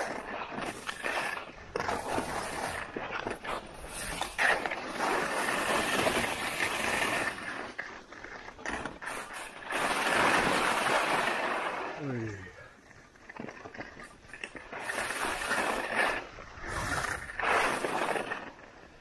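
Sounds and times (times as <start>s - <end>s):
skis scraping on snow: 0.0s - 19.0s.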